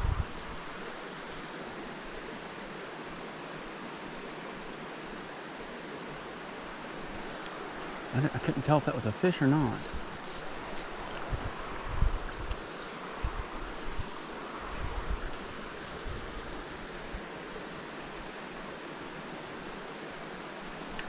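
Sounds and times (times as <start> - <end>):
wind bumps on microphone: 0.0 - 0.7, 9.8 - 12.6, 13.2 - 16.3
mountain stream flowing: 0.0 - 21.0.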